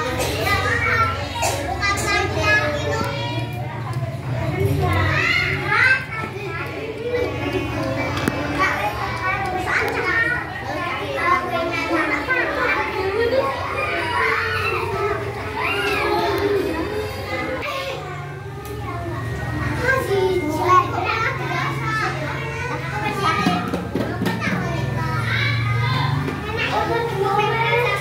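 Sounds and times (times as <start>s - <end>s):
young children chattering: 0.0s - 28.0s.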